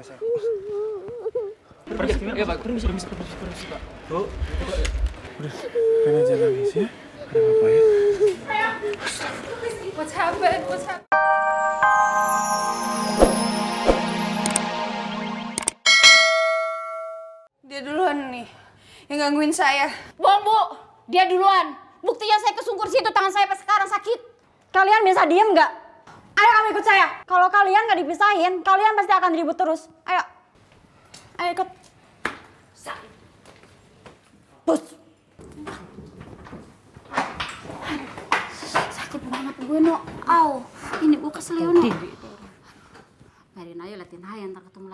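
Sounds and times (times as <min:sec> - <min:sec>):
notification bell ding: 0:11.1 - 0:17.5.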